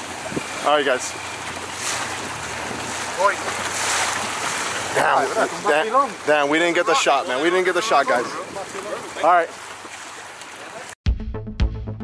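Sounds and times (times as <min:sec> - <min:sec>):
water rushing past a boat: 0:00.0 - 0:11.0.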